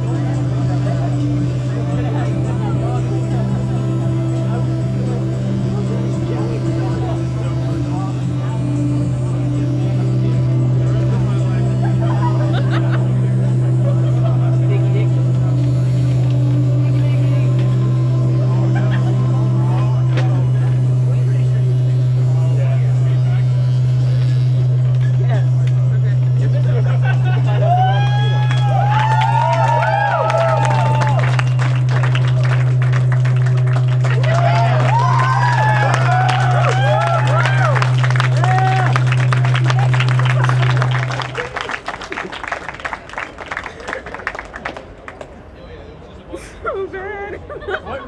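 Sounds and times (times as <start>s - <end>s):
low electronic drone: 0.0s - 46.3s.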